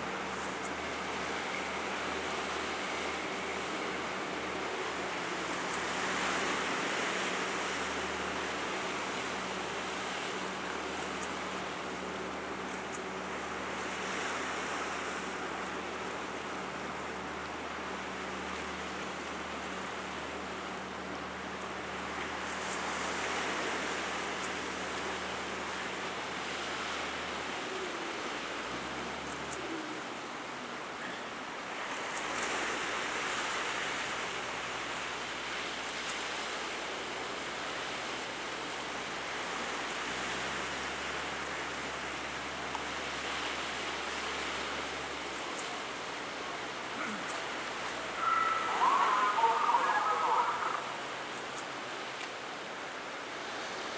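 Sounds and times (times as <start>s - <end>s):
ocean surf washing ashore: 0.0s - 53.9s.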